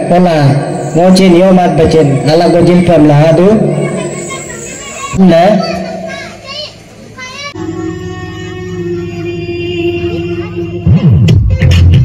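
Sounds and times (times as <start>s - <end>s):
crowd voices: 0.0s - 11.2s
children calling out: 0.1s - 10.8s.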